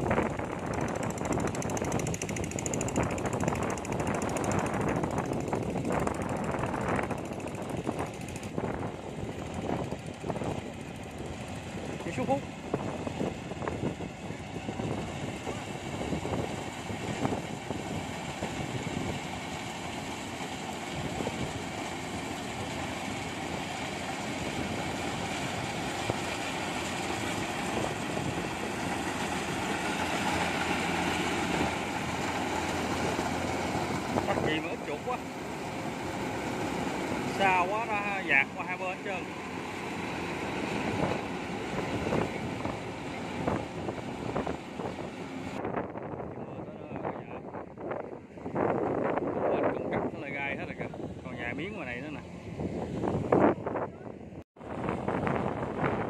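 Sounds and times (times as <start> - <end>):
combine harvester drone: 0.0 - 56.0.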